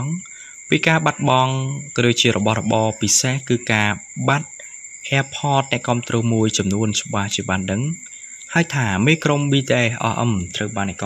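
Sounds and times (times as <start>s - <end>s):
high-pitched humming tones: 0.0s - 11.0s
person speaking: 0.0s - 11.0s.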